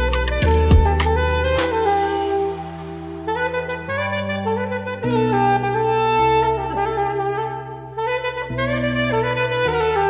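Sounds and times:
sustained low backing chords: 0:00.0 - 0:05.7
alto saxophone melody: 0:00.0 - 0:10.0.

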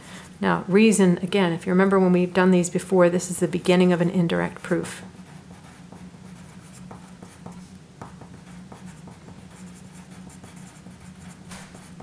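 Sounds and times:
pencil scratching on paper: 0:04.6 - 0:12.0.

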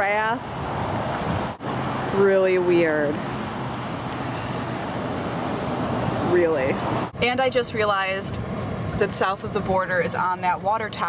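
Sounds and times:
wind noise: 0:00.0 - 0:02.2
car road noise: 0:00.0 - 0:11.0.

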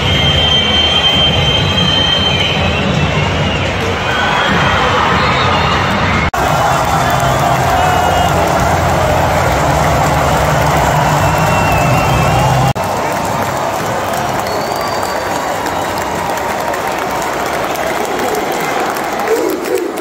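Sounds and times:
stadium crowd din: 0:00.0 - 0:20.0.

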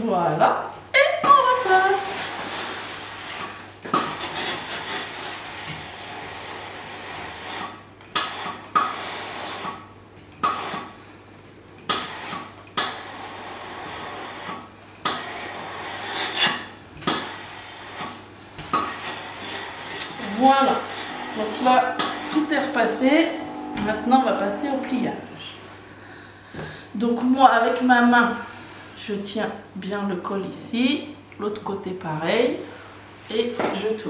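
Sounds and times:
steam iron hissing: 0:02.0 - 0:07.7, 0:12.0 - 0:16.4, 0:18.8 - 0:25.2
steady low hum: 0:18.2 - 0:27.0
steam bursts: 0:18.9 - 0:25.2.

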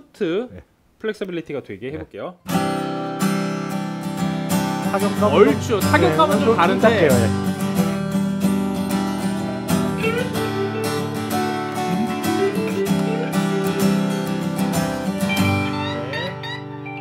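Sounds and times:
acoustic guitar strumming: 0:02.5 - 0:17.0.

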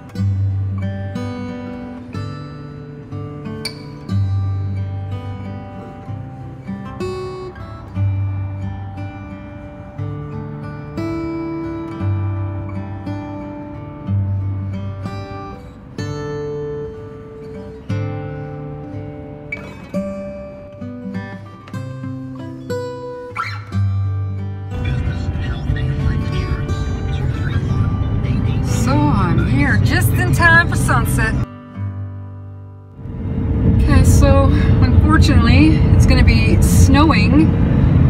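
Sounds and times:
acoustic guitar music: 0:00.0 - 0:38.0.

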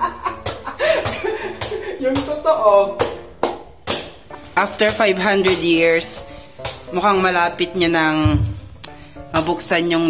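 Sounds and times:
laughter: 0:00.0 - 0:02.0.

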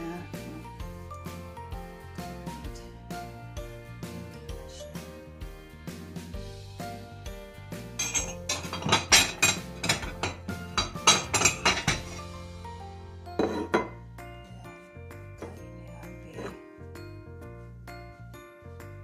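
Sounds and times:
background music: 0:00.0 - 0:19.0
dishes clinking: 0:08.0 - 0:12.3, 0:13.4 - 0:14.0.

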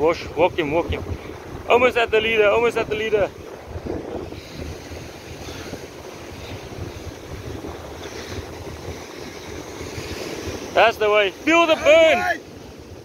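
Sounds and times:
surf breaking on rocks: 0:00.0 - 0:13.0
wind buffeting microphone: 0:00.0 - 0:13.0.

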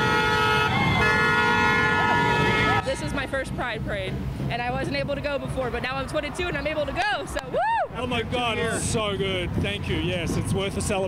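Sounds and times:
motorcycle horns honking: 0:00.0 - 0:02.8.

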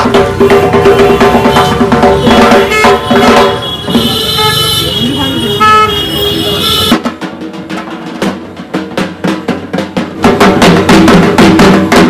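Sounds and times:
drum beats: 0:00.0 - 0:12.0
vehicle horns tooting: 0:00.3 - 0:07.0
crowd chatter: 0:00.4 - 0:07.0.

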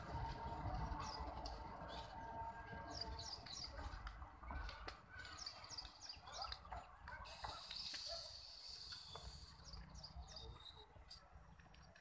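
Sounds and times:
faint low rumble: 0:00.0 - 0:04.8
small bird chirping: 0:07.3 - 0:11.2.

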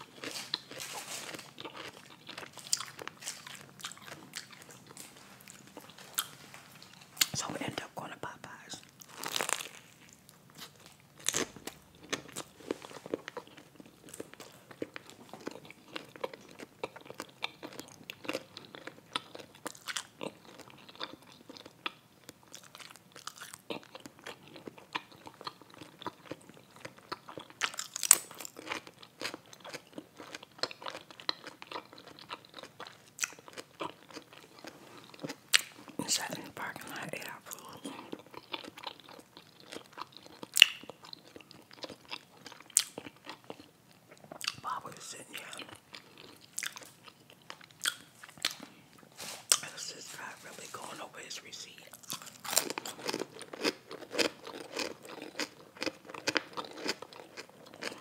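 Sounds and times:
chips crunching: 0:00.0 - 0:07.3, 0:08.5 - 0:21.7, 0:49.5 - 0:58.0
wet mouth chewing sounds: 0:00.0 - 0:58.0.

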